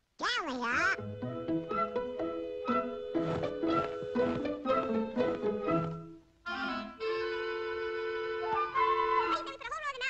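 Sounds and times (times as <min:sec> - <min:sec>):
orchestral cartoon music woodwinds: 0:01.0 - 0:09.6.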